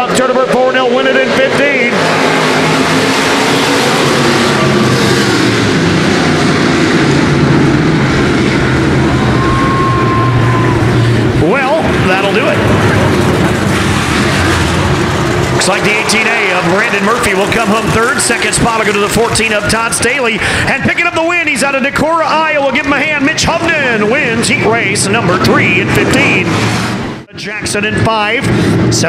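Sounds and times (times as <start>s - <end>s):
race car engines running: 0.0s - 29.0s
engine revving sharply: 0.2s - 29.0s.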